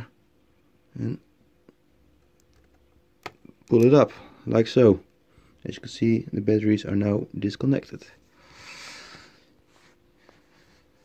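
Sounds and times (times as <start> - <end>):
soft breath through the nose: 8.3 - 11.0.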